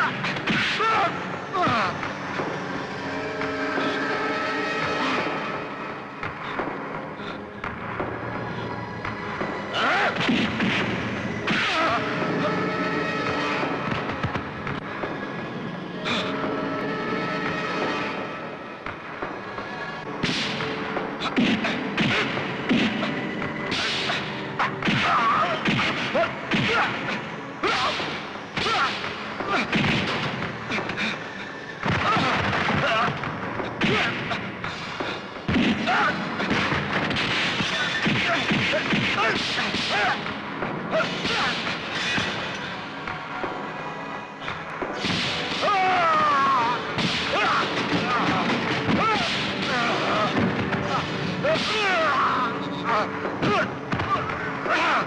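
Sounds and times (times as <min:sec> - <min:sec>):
dramatic background music: 0:00.0 - 0:55.0.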